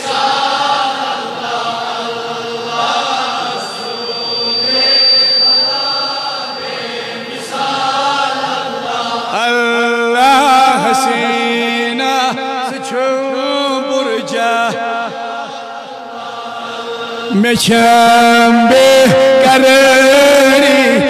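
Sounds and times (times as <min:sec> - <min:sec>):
congregation chanting: 0:00.0 - 0:21.0
thin high whistle: 0:00.2 - 0:09.4.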